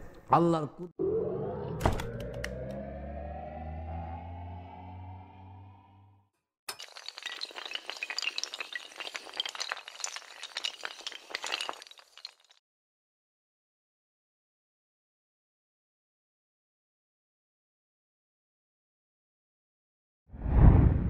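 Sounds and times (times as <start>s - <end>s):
rising held tone: 1.0s - 6.2s
domino tiles clattering: 6.7s - 12.5s.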